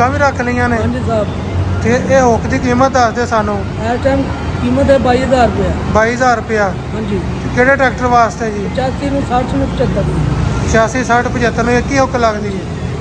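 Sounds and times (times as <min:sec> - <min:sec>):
man talking: 0:00.0 - 0:12.8
road traffic rumble: 0:00.0 - 0:13.0.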